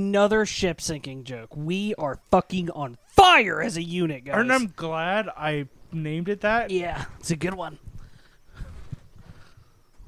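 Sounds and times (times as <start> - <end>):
faint room hiss: 0.0 - 10.0.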